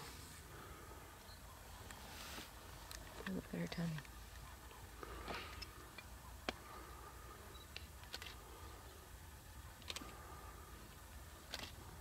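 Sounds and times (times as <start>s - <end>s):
faint sharp clicks: 9.8s - 10.2s.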